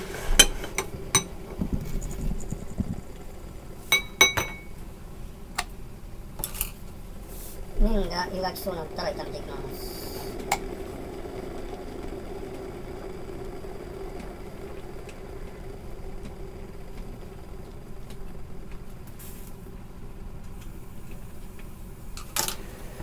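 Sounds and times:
low background hum: 0:00.0 - 0:23.0.

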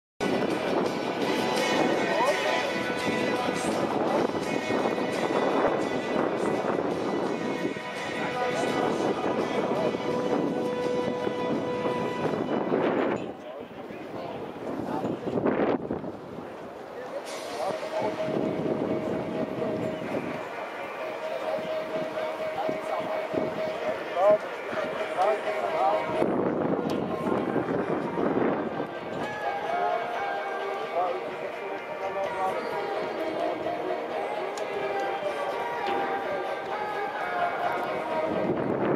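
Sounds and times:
babble of spectators' voices: 0:00.2 - 0:38.9
music over stadium loudspeakers: 0:00.2 - 0:38.9.

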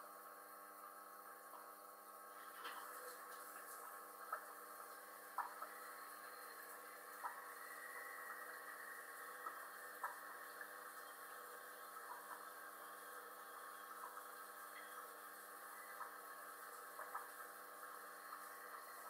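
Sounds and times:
aquarium filter hum: 0:00.0 - 0:19.0.

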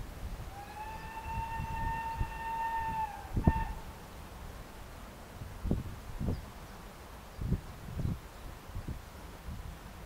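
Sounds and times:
steam locomotive whistle: 0:00.5 - 0:03.8.

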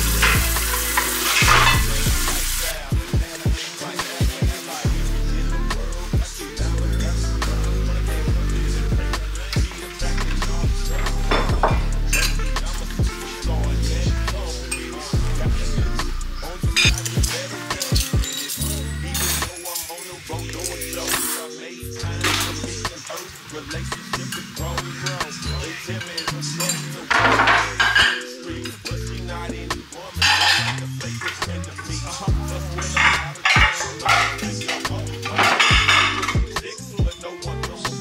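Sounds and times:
music with heavy bass beat: 0:00.0 - 0:38.0
dishes clinking in steel sink: 0:00.2 - 0:02.0, 0:11.3 - 0:12.4, 0:25.5 - 0:28.3, 0:30.2 - 0:31.4, 0:32.8 - 0:36.4.

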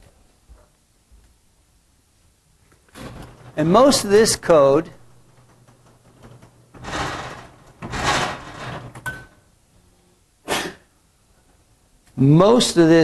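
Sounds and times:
clothing rubbing microphone: 0:06.7 - 0:09.0.

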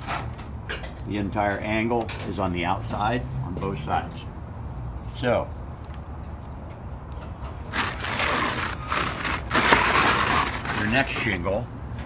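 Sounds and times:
shingle scraping over shingles: 0:07.7 - 0:11.7.

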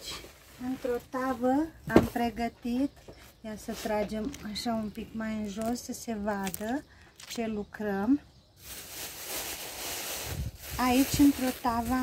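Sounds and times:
plastic bag crinkling: 0:04.3 - 0:07.4, 0:08.6 - 0:12.0.

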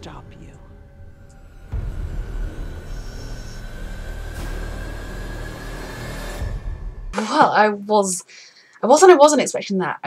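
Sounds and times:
suspenseful score music: 0:00.0 - 0:08.8.

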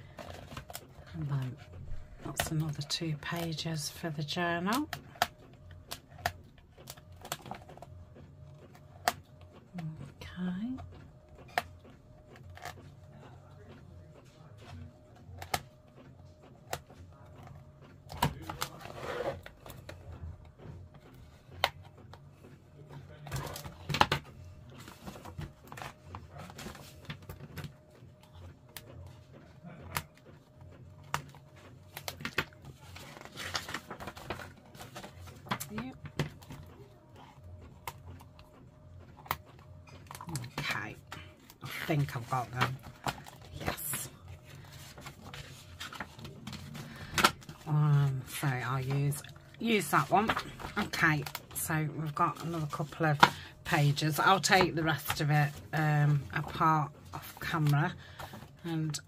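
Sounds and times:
paper rustling: 0:29.1 - 0:36.7, 0:37.6 - 0:58.6.

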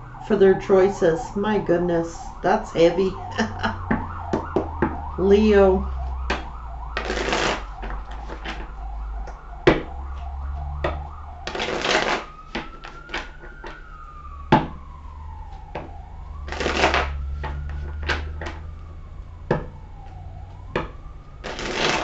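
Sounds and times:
faint tone rising and falling: 0:00.0 - 0:07.0, 0:07.6 - 0:11.4
cards tapping and clicking: 0:06.3 - 0:08.6, 0:09.3 - 0:09.9
cards being riffle-shuffled: 0:07.0 - 0:08.6, 0:11.5 - 0:13.3, 0:16.5 - 0:17.1, 0:21.4 - 0:22.0.

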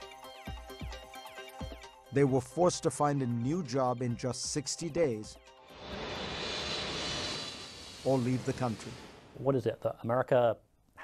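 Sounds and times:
jet airliner passing overhead: 0:05.7 - 0:09.4.

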